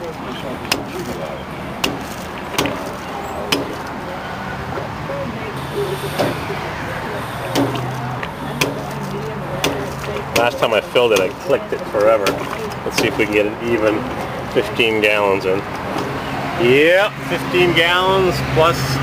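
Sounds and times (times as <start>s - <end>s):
fuel flowing through nozzle: 5.6s - 10.4s
sharp clicks: 7.4s - 11.4s.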